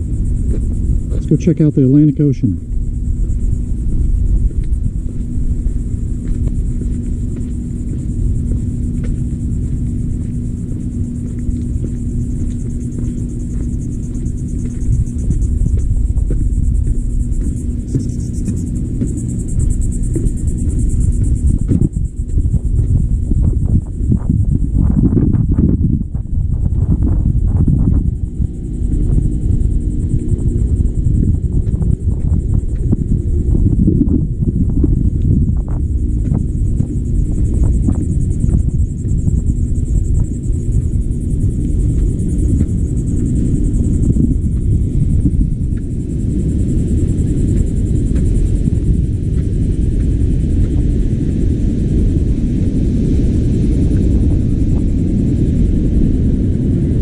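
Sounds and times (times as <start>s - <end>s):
wind buffeting microphone: 0.0s - 57.0s
footsteps on wooden boardwalk: 0.1s - 1.4s, 2.6s - 52.6s.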